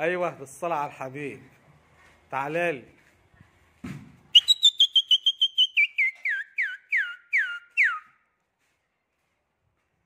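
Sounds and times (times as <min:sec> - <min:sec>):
short whistled notes: 0:04.3 - 0:08.2.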